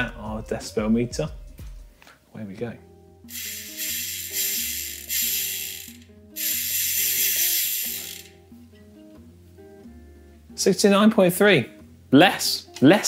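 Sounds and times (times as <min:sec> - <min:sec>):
bicycle hub clicking buzz: 0:03.3 - 0:08.4.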